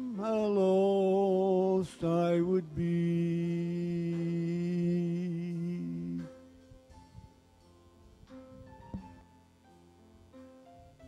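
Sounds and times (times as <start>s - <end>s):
man singing a hymn: 0.0s - 6.5s.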